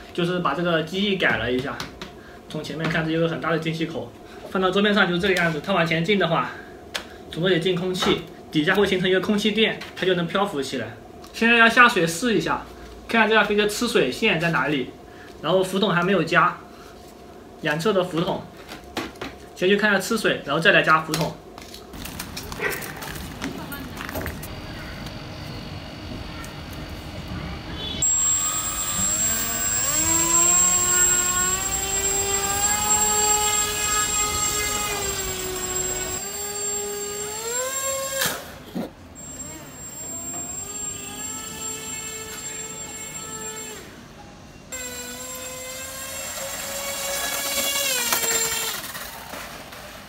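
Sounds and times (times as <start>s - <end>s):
thin steady high whine: 24.0s - 38.4s, 39.1s - 45.5s
electric motor and propeller whining: 24.5s - 38.6s, 39.2s - 43.9s, 44.8s - 49.2s.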